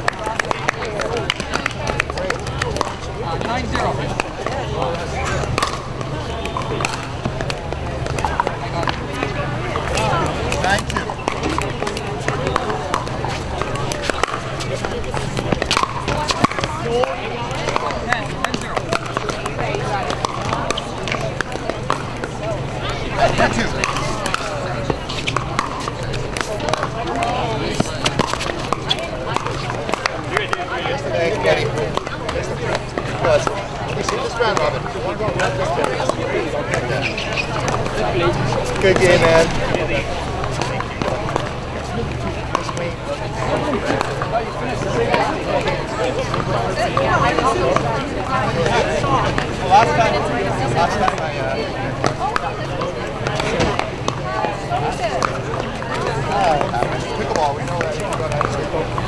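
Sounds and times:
paddles hitting pickleballs: 0.0s - 59.0s
people talking: 0.0s - 59.0s.

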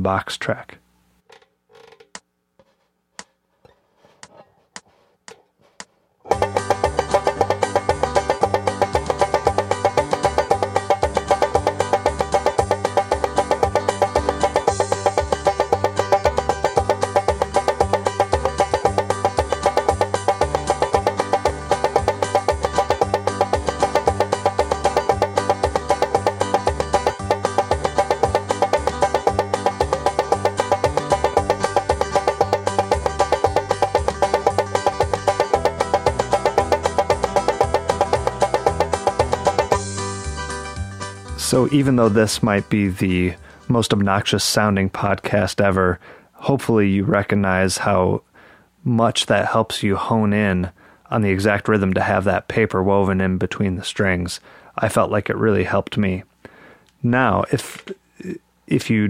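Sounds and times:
backing track of bass and chords: 6.3s - 43.5s.

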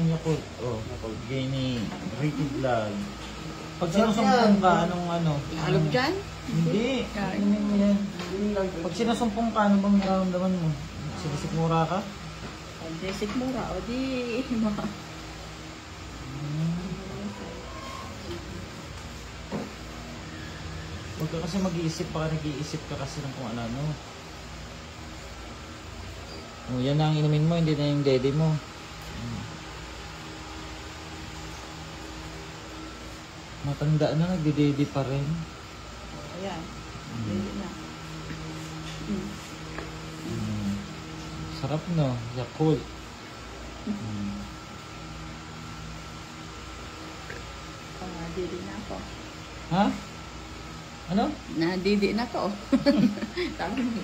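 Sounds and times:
background hum: 0.0s - 54.0s
faint high whine: 0.0s - 54.0s
woman humming: 16.2s - 18.4s, 40.2s - 41.0s, 43.8s - 44.7s.

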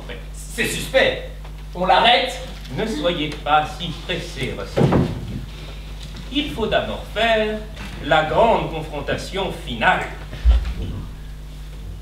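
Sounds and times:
low hum of hall: 0.0s - 12.0s
dull low thump: 10.4s - 11.3s.

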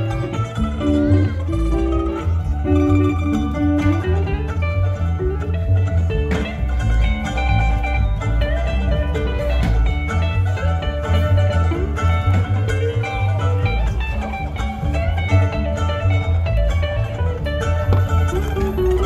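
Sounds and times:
double bass plucking: 0.0s - 19.0s
electric guitar picking: 0.0s - 19.0s
mandolin picking melody: 0.0s - 19.0s.

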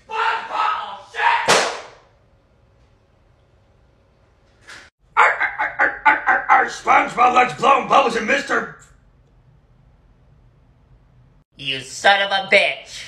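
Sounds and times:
sharp slam: 1.4s - 2.0s
person talking: 5.2s - 8.8s.

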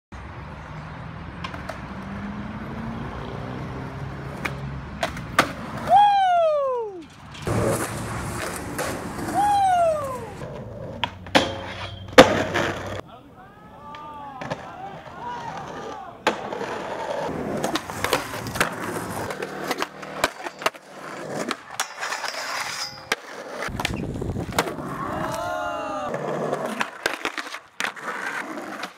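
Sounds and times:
skateboard wheels rolling on concrete: 0.1s - 28.9s
skateboard pops and landings: 4.4s - 5.9s, 7.4s - 13.0s, 23.1s - 25.4s
skateboard on metal handrails: 6.9s - 13.0s, 15.3s - 25.4s.

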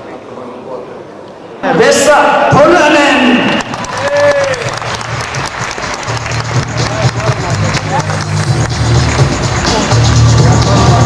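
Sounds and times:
man speaking: 1.6s - 3.6s
audience applauding: 3.5s - 11.0s.

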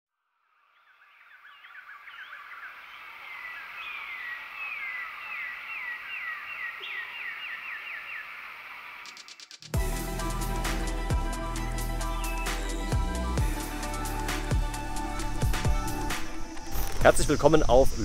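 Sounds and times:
music with a beat: 9.2s - 16.3s.

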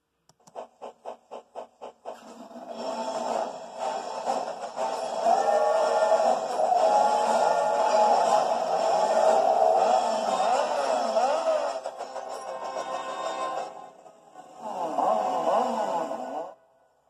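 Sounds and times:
steam locomotive chuffing: 0.3s - 16.5s
film music: 2.4s - 16.8s.

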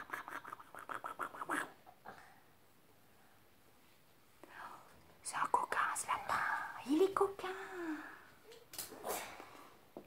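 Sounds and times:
woman whispering: 0.0s - 1.8s, 4.4s - 8.2s.

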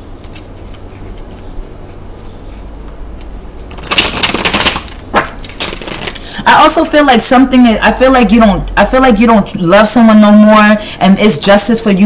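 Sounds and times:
cards being shuffled: 3.7s - 6.3s.

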